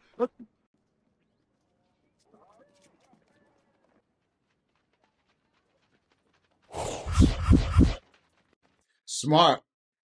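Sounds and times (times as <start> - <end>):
quick clattering steps: 7.3 - 9.0.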